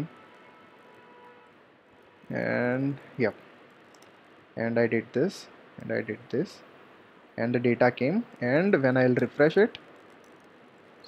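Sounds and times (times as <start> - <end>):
faint background hiss: 0.0 - 11.0
faint hum: 0.0 - 11.0.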